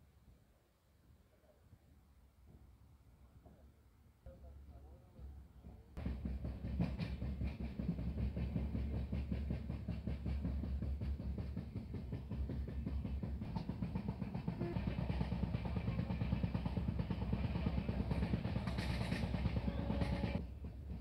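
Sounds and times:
train rumbling on rails: 0:05.6 - 0:21.0.

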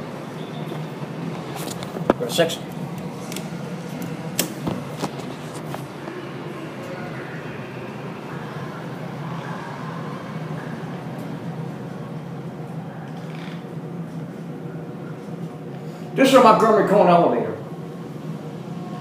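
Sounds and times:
sliding doors closing: 0:00.0 - 0:14.5
elevator low hum: 0:00.0 - 0:19.0.

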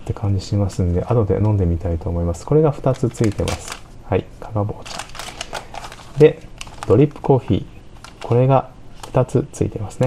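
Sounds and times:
paper sachets crinkling: 0:02.8 - 0:03.9, 0:04.8 - 0:09.2.

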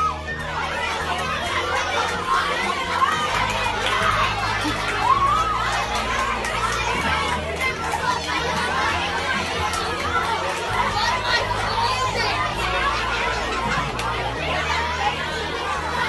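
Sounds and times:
children chattering: 0:00.0 - 0:16.0.

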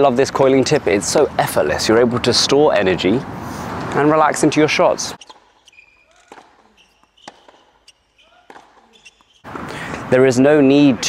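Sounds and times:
tennis balls hit and bouncing: 0:05.0 - 0:10.1.

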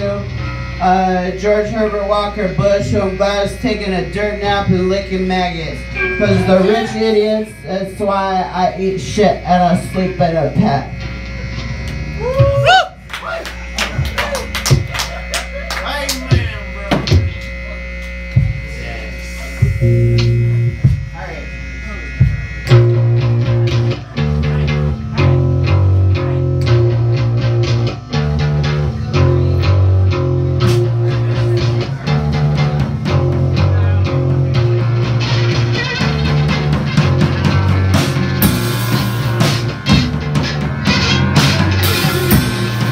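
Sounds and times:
amplifier buzz: 0:00.0 - 0:42.9
rock band driving riff: 0:00.0 - 0:42.9
sliding guitar tones: 0:00.0 - 0:42.9
drum hits: 0:13.9 - 0:15.2, 0:16.1 - 0:17.4, 0:18.3 - 0:18.7, 0:19.6 - 0:21.2, 0:36.2 - 0:42.9.

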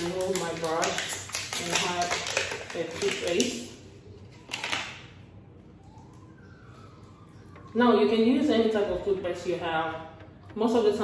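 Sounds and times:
packaging rustling and crackling: 0:00.0 - 0:05.0.

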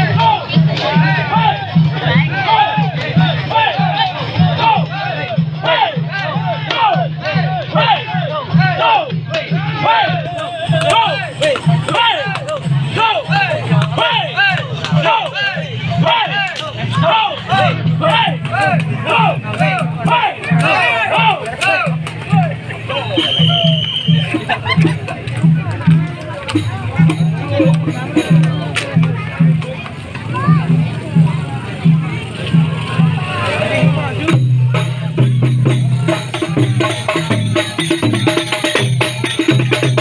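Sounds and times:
crowd shouting and cheering: 0:00.0 - 0:40.0
parade music with low beat: 0:00.0 - 0:40.0.

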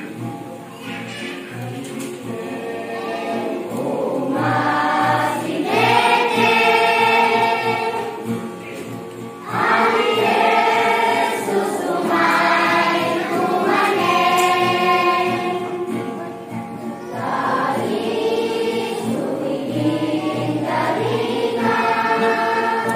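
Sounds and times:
children's choir singing a hymn: 0:00.0 - 0:22.9.

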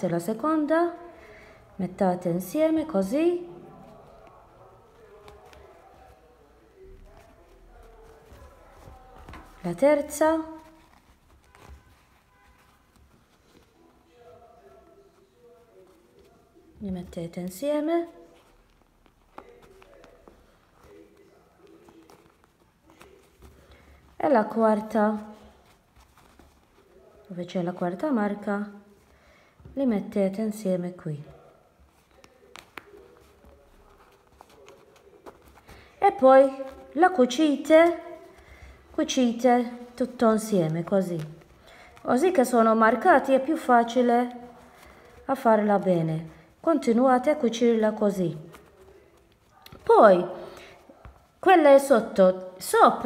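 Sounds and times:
fabric handling: 0:02.4 - 0:53.0.

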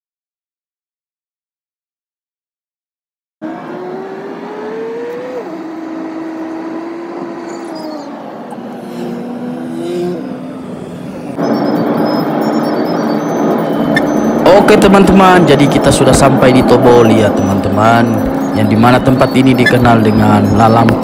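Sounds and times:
car engine accelerating: 0:03.4 - 0:21.0
road noise: 0:03.4 - 0:21.0.

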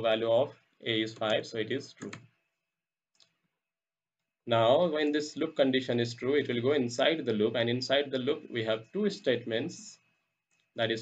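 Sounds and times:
faint keyboard or mouse click: 0:01.1 - 0:02.3.

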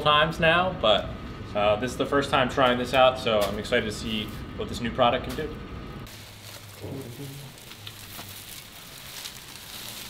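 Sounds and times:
steady low hum: 0:00.0 - 0:09.7
plastic wrap crinkling: 0:06.1 - 0:10.0.

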